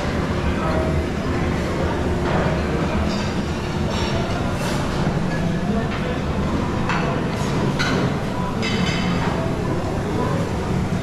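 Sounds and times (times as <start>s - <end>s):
murmur of diners' voices: 0.0s - 11.0s
dishes and cutlery clinking: 2.2s - 6.1s, 6.8s - 9.4s.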